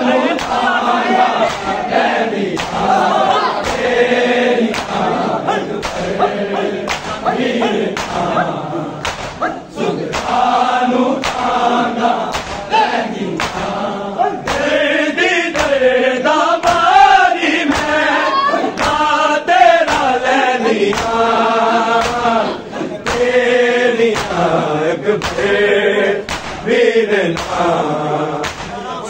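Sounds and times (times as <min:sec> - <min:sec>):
men chanting a lament: 0:00.0 - 0:29.0
hand slaps on chest: 0:00.4 - 0:00.6, 0:01.4 - 0:01.8, 0:02.6 - 0:02.9, 0:03.6 - 0:03.9, 0:04.7 - 0:05.0, 0:05.8 - 0:08.4, 0:09.0 - 0:09.5, 0:10.1 - 0:10.4, 0:11.2 - 0:11.5, 0:12.3 - 0:12.7, 0:13.4 - 0:13.8, 0:14.4 - 0:14.8, 0:15.5 - 0:15.8, 0:16.6 - 0:17.0, 0:17.7 - 0:18.0, 0:18.8 - 0:19.1, 0:19.8 - 0:20.2, 0:20.9 - 0:21.2, 0:22.0 - 0:22.3, 0:23.0 - 0:23.3, 0:24.1 - 0:24.5, 0:25.2 - 0:25.6, 0:26.3 - 0:26.7, 0:27.4 - 0:27.7, 0:28.4 - 0:28.8.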